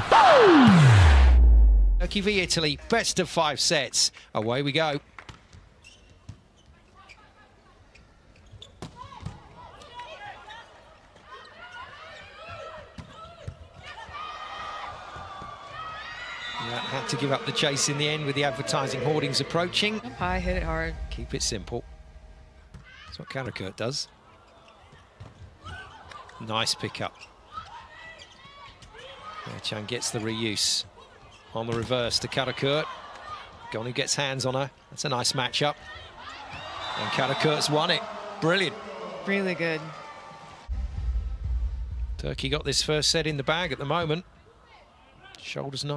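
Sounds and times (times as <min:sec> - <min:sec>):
players calling: 0:00.0 - 0:01.4, 0:16.5 - 0:22.6, 0:36.2 - 0:40.8
shoe squeaks: 0:05.8 - 0:07.3, 0:07.9 - 0:08.8.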